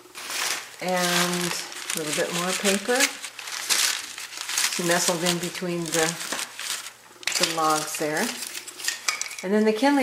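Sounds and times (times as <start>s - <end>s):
paper crinkling and rustling: 0.0s - 9.1s.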